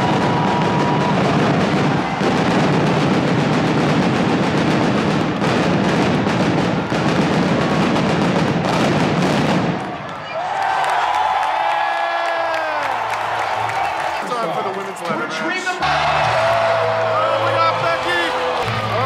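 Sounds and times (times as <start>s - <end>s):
pyrotechnic bangs: 0.0s - 10.0s
crowd noise: 0.0s - 19.0s
loud music: 15.8s - 19.0s.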